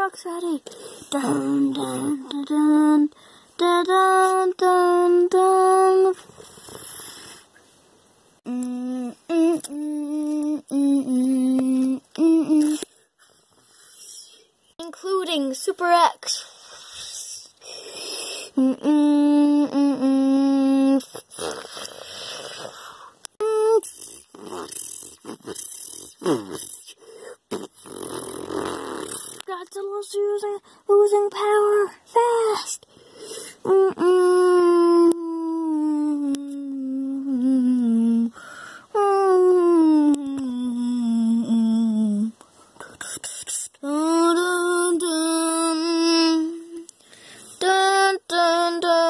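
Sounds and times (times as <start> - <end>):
child singing: 0.0 - 6.2, 8.5 - 12.8, 29.5 - 32.8, 33.6 - 38.3, 39.0 - 46.9, 47.6 - 49.0.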